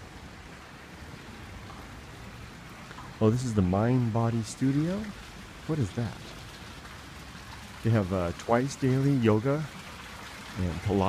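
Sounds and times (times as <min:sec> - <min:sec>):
fountain water splashing into pool: 0:00.0 - 0:11.0.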